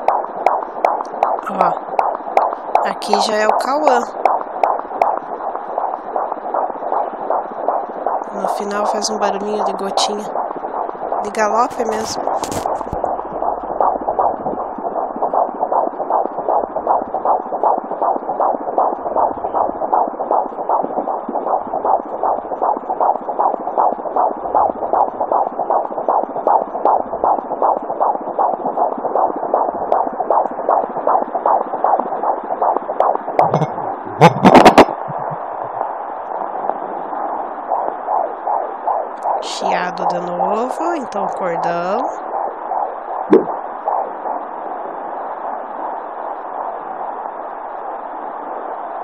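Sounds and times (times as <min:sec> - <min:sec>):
fetal heartbeat through doppler: 0:00.0 - 0:49.0
probe knock: 0:32.6 - 0:35.9, 0:43.3 - 0:43.6.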